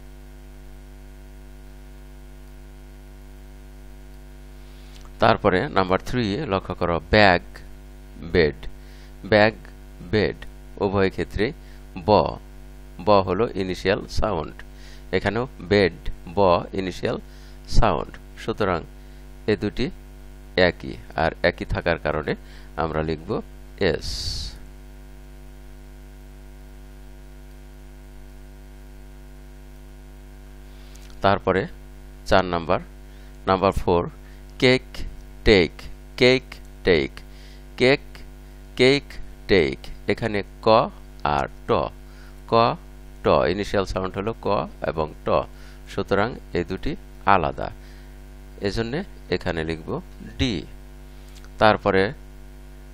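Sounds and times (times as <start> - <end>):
electrical mains hum: 0.0 - 52.9.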